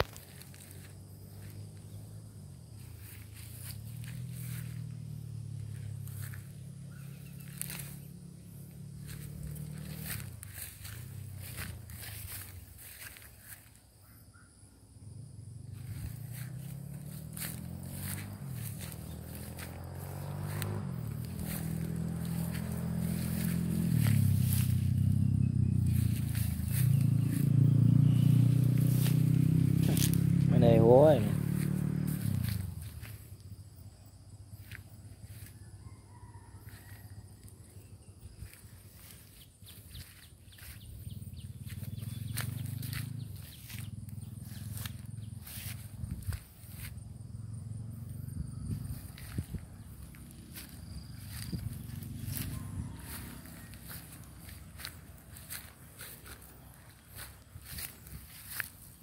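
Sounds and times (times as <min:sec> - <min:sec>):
low wavering hum: 0:00.0 - 0:13.0, 0:15.4 - 0:30.6
footsteps through grass: 0:00.0 - 0:13.8, 0:15.7 - 0:33.4, 0:34.6 - 0:35.6, 0:38.4 - 0:47.1, 0:48.6 - 0:59.0.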